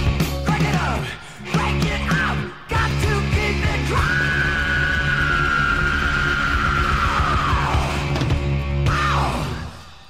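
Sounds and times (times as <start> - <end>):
heavy metal song: 0.0 - 10.0.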